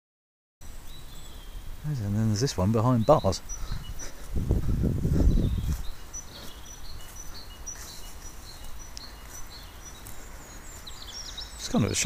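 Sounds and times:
small birds chirping: 0.6 - 12.0.

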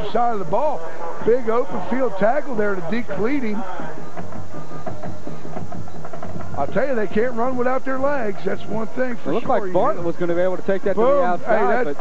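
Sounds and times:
drumline playing a beat: 1.4 - 8.6.

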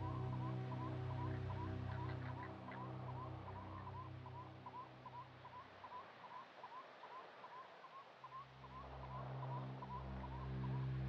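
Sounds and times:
ambient music tones: 0.0 - 5.3, 8.6 - 11.0.

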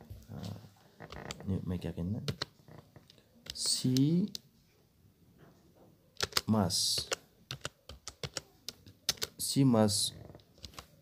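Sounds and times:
keyboard typing clicks: 6.2 - 9.4.

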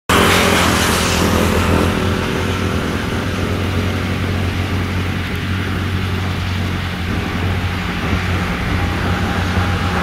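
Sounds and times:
engine running with low hum: 0.1 - 10.0
rush of noise: 0.1 - 10.0.

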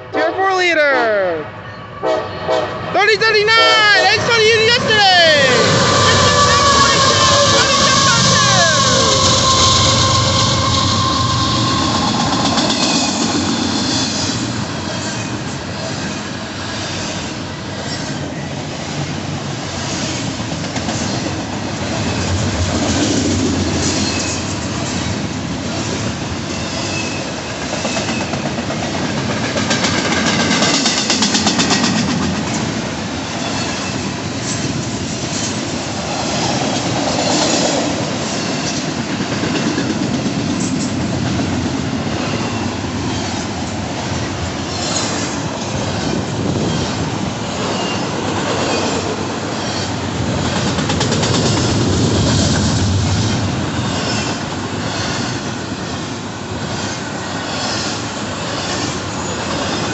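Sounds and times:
train wheels rumbling on rail: 3.6 - 59.9.

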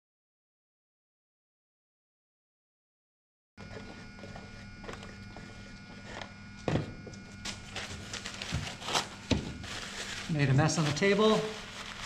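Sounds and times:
electrical room hum: 3.6 - 12.0
paper towel tearing: 7.4 - 12.0.

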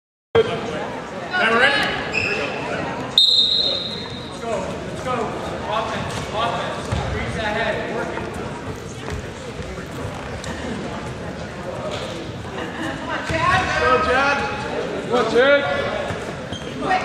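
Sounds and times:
spectators and coaches calling out: 0.4 - 10.8
high steady whistle: 3.2 - 4.1.

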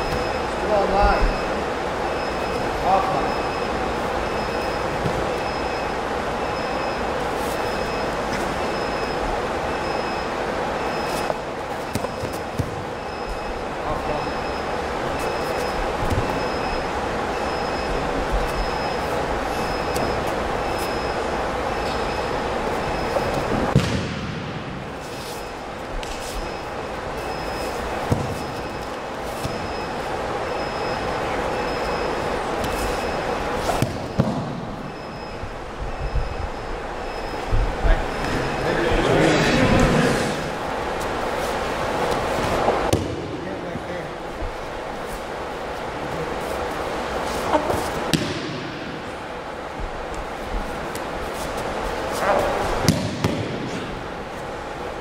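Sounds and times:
faint high beep: 0.0 - 12.4, 13.0 - 23.5, 26.3 - 27.8, 28.4 - 33.4, 34.8 - 38.7.

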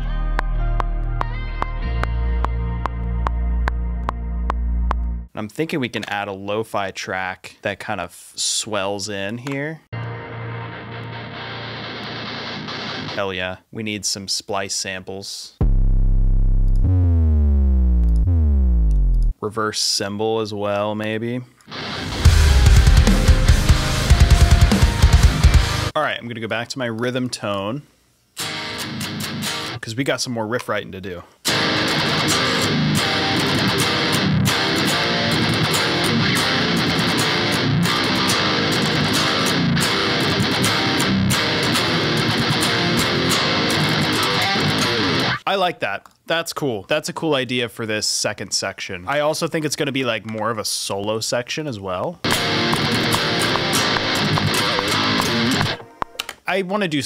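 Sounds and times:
deep bass note: 0.0 - 5.3, 15.6 - 19.3, 22.1 - 25.9
distorted electric guitar riff: 10.0 - 13.2, 15.6 - 19.3, 21.7 - 26.0, 28.4 - 29.8, 31.5 - 45.4, 52.3 - 56.3
sub-drop boom sliding downward: 15.6 - 19.3
backing drums and bass: 22.1 - 25.9.

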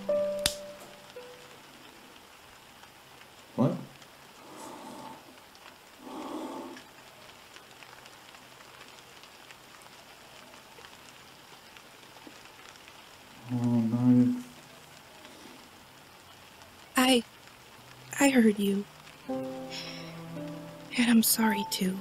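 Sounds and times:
faint rain falling: 0.0 - 22.0.

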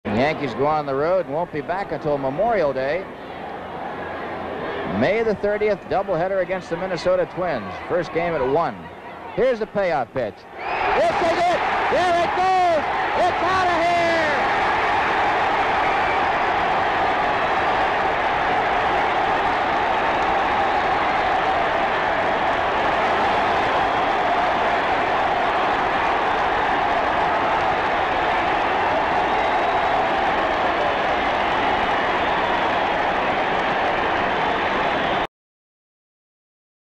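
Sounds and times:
crowd cheering and applauding: 10.6 - 35.3
broadcaster's excited call: 10.8 - 14.6.

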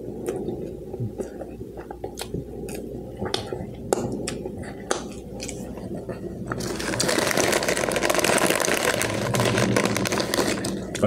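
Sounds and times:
chip bag rustling: 6.5 - 11.0.

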